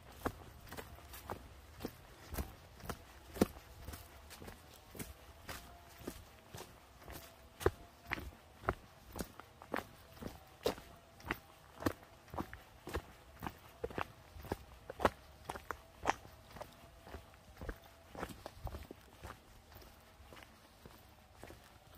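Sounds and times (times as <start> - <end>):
footsteps crunching on gravel: 0.0 - 21.9.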